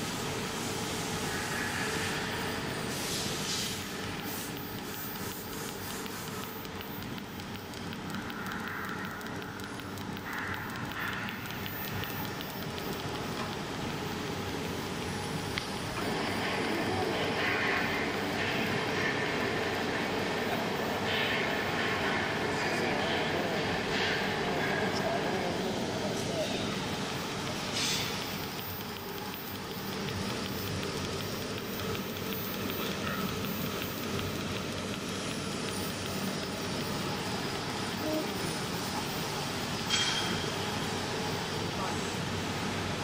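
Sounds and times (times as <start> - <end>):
workshop noise: 0.0 - 41.8
welding machine hum: 0.0 - 43.0.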